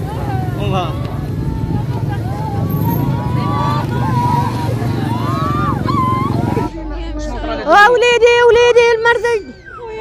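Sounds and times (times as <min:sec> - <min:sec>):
street traffic rumble: 0:00.0 - 0:10.0
women wailing and crying: 0:01.3 - 0:10.0.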